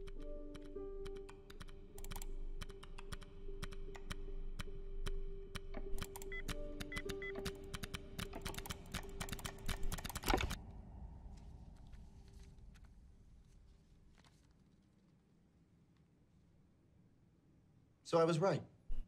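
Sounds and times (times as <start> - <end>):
keyboard typing clicks: 0.0 - 10.6.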